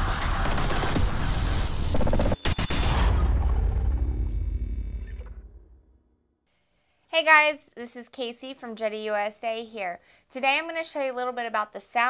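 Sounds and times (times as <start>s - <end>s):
deep rumble after a boom: 2.8s - 6.2s.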